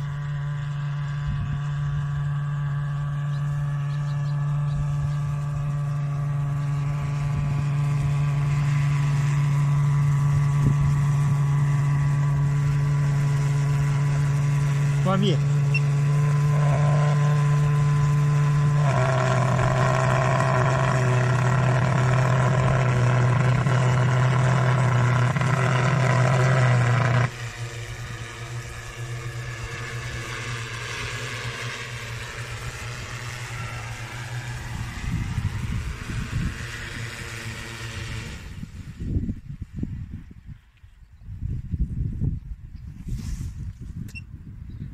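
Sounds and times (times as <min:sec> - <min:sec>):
drone fogger loud hum: 0:00.0 - 0:39.9
drone propellers whirring: 0:00.0 - 0:40.6.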